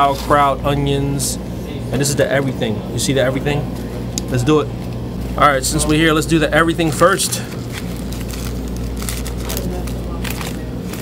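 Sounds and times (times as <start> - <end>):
steady low hum: 0.0 - 11.0
paper wrapper crinkling: 6.8 - 11.0.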